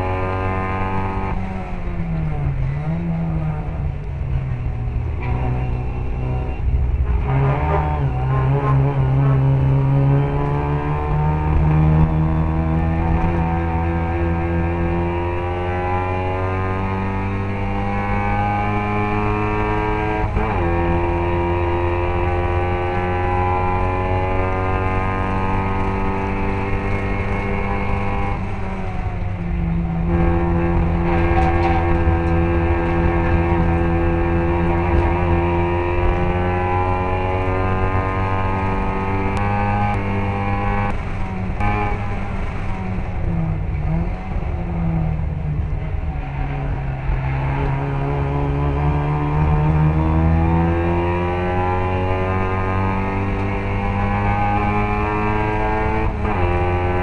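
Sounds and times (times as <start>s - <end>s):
race car engine at high revs: 0.0s - 57.0s.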